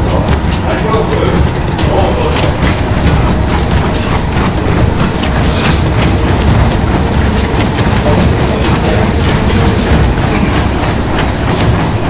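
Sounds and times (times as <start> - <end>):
footfalls knocking: 0.0 - 12.0
treadmill belt rumbling: 0.0 - 12.0.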